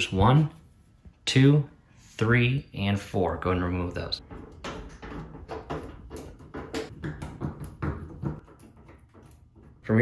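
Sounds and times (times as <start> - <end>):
screwdriver clicking and creaking: 8.4 - 9.8.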